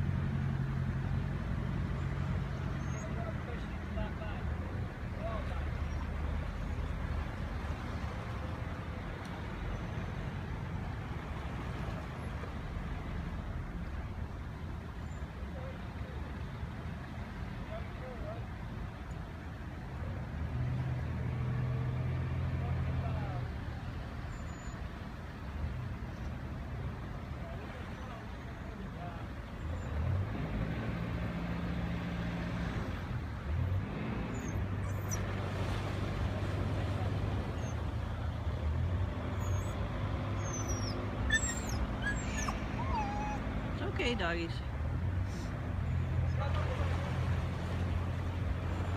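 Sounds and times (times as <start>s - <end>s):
low engine hum: 0.0s - 48.9s.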